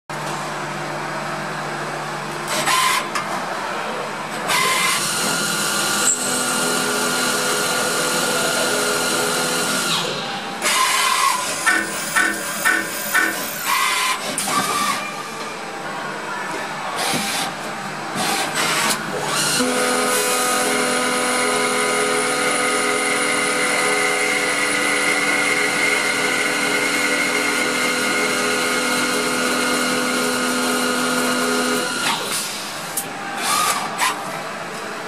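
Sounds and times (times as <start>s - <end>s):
lathe machine hum: 5.0s - 14.1s, 17.7s - 32.1s.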